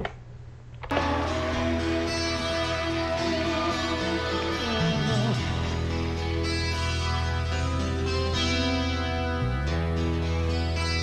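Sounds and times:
acoustic guitars playing rock: 0.8s - 11.0s.

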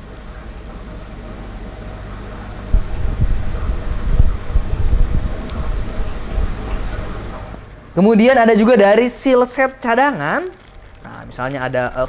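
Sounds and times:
steady low hum: 0.0s - 12.0s
wind buffeting microphone: 2.7s - 7.3s.

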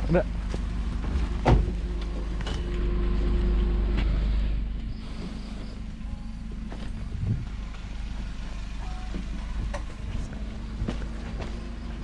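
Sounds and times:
vehicle engine idling: 0.0s - 12.0s
footsteps: 9.0s - 12.0s.

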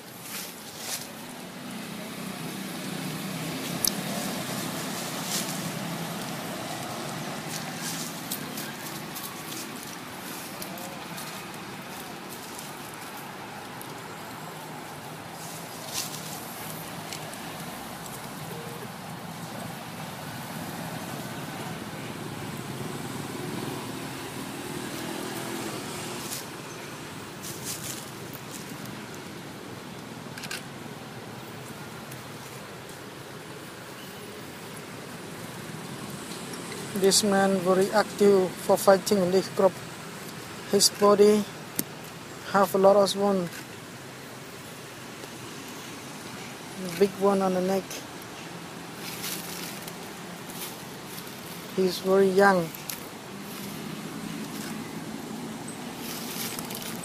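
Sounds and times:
motorbike engines passing: 0.0s - 57.0s.

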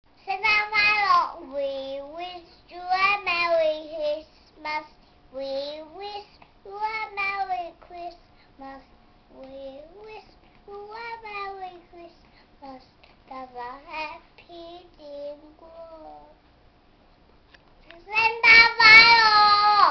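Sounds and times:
girl singing: 0.2s - 16.4s, 17.9s - 19.9s
girl breathing: 8.2s - 8.6s, 12.1s - 13.2s.

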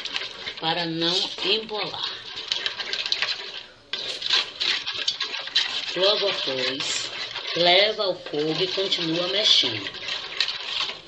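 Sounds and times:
spoon scraping metal pot: 0.0s - 11.0s.

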